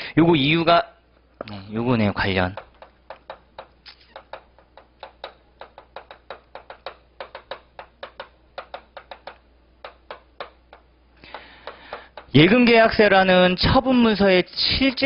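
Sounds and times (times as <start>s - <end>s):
chalk tapping on blackboard: 2.2s - 12.4s.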